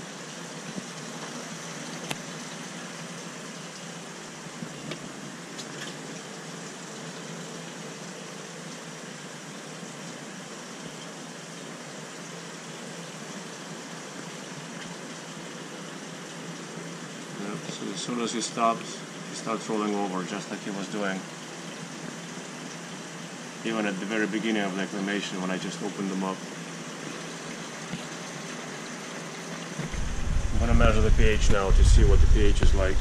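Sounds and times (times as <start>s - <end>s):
aquarium water filter hiss: 0.0s - 33.0s.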